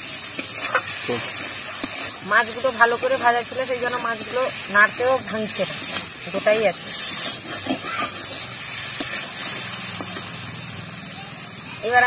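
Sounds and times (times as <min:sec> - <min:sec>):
fish sizzling in hot oil: 0:00.0 - 0:12.0
metal spatula scraping: 0:00.3 - 0:04.1, 0:05.2 - 0:10.3.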